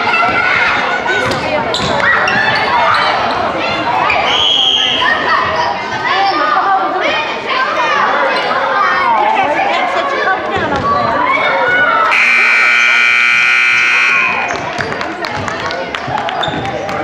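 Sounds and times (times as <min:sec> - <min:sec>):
children and spectators chattering: 0:00.0 - 0:17.0
scoreboard buzzer blare: 0:12.1 - 0:14.6.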